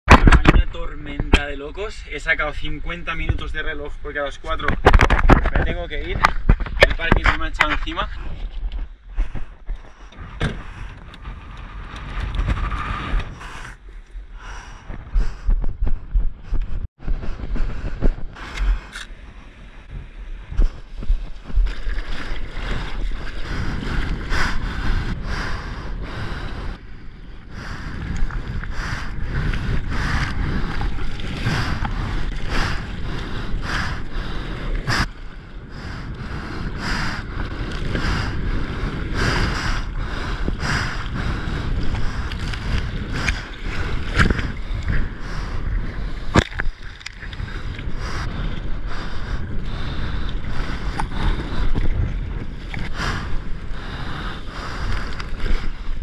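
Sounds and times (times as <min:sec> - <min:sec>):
wind rumbling on microphone: 0:00.1 - 0:56.0
sea water sloshing and splashing: 0:19.3 - 0:25.0, 0:26.8 - 0:35.2, 0:37.3 - 0:56.0.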